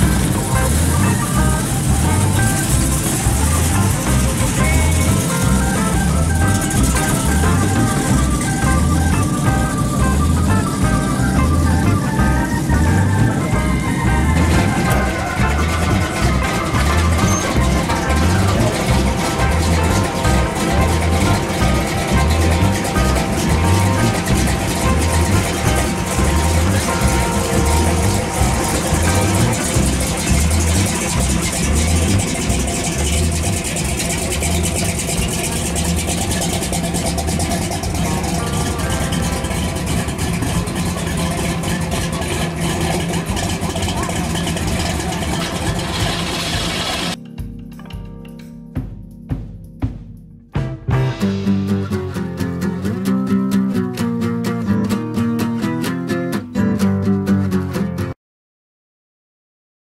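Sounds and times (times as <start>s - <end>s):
people's voices: 0.0s - 47.2s
car engine idling with loping beat: 0.0s - 57.4s
music: 0.0s - 58.2s.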